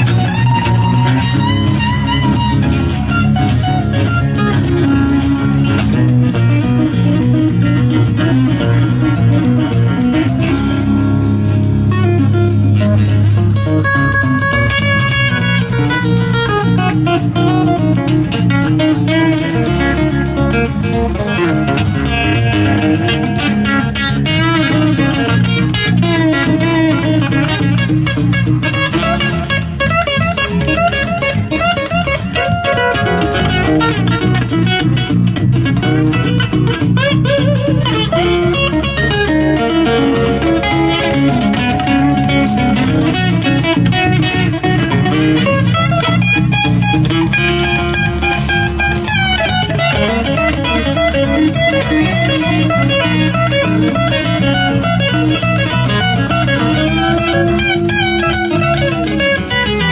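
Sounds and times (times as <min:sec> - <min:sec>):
acoustic guitars strummed and picked: 0:00.0 - 0:59.9
electric bass: 0:00.0 - 0:59.9.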